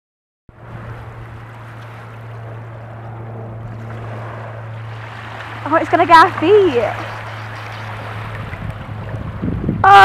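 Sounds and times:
low rumbling: 0.5s - 10.0s
waves washing up shore: 0.6s - 9.8s.

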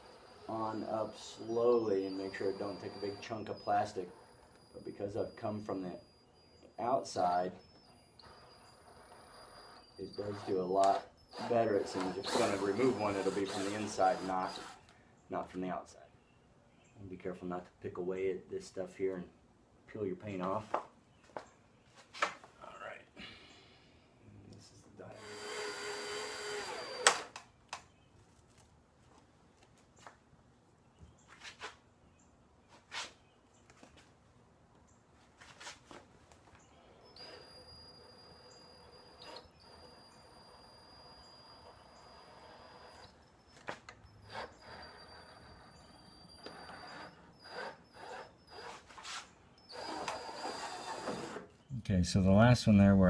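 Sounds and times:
cordless drill boring through plastic: 0.0s - 14.9s, 25.1s - 27.4s, 37.0s - 48.9s, 49.6s - 51.5s.

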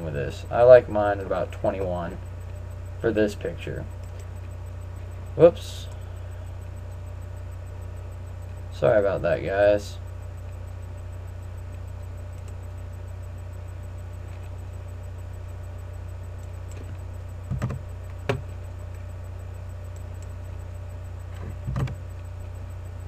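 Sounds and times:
low electrical hum: 0.0s - 23.0s.

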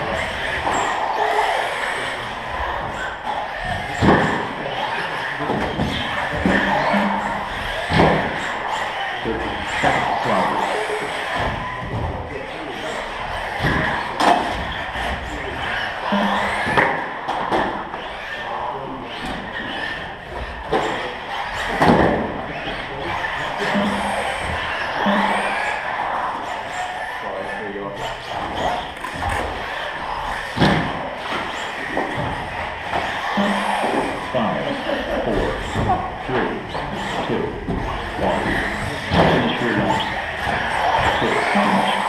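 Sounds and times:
radio-controlled cars racing: 0.0s - 42.0s
voices: 0.0s - 42.0s.

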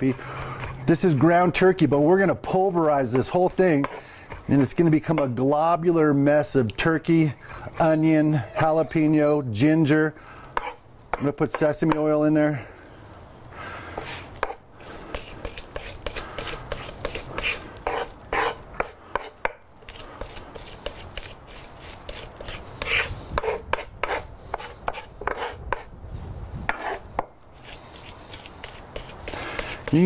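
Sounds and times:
knife chopping on wooden board: 10.6s - 12.1s, 14.0s - 19.6s, 22.1s - 25.9s.

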